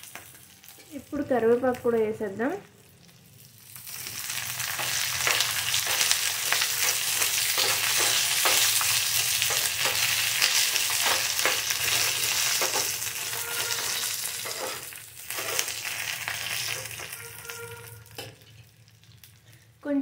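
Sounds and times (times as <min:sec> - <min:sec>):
food sizzling in hot oil: 0:00.0 - 0:19.8
steel spoon scraping pan: 0:04.7 - 0:18.7.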